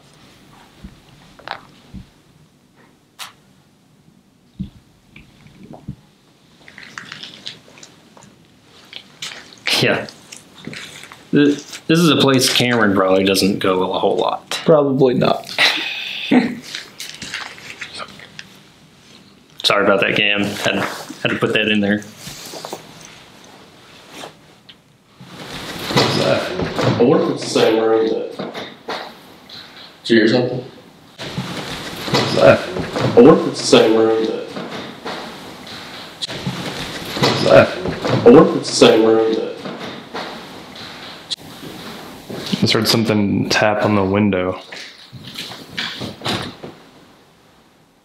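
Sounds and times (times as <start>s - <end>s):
clothing rustling: 4.6s - 14.3s, 16.6s - 19.5s, 20.4s - 30.0s, 31.2s - 43.0s, 44.7s - 47.3s.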